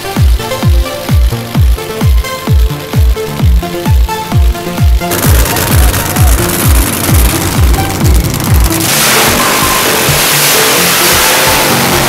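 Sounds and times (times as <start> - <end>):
electronic music with bass beat: 0.0 - 12.0
dragster engine burnout roar: 5.1 - 12.0.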